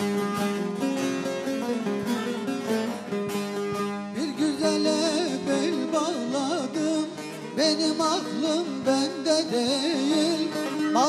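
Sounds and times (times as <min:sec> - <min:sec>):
man singing folk song: 0:01.5 - 0:03.0, 0:03.6 - 0:11.0.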